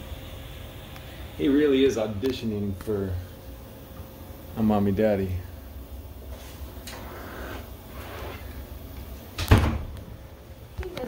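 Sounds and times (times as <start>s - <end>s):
loud heavy thump: 9.4s - 10.0s.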